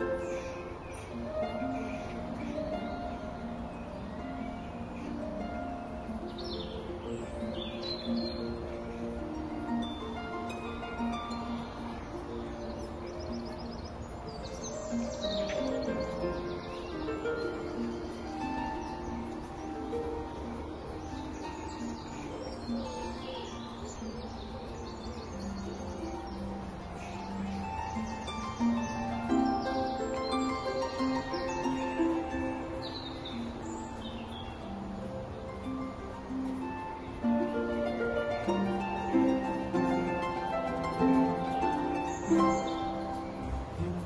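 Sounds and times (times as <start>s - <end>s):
birds chirping: 0.0s - 44.0s
instrumental music of held notes: 0.0s - 44.0s.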